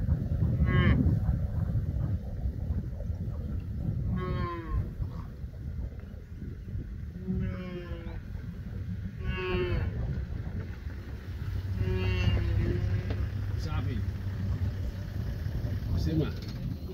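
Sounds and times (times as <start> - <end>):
steady low rumble: 0.0 - 16.9
wildebeest lowing calls: 0.1 - 16.0.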